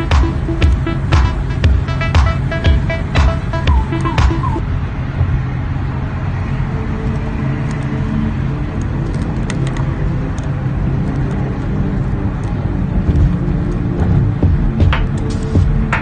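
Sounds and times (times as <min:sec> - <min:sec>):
car road and engine noise: 0:00.0 - 0:16.0.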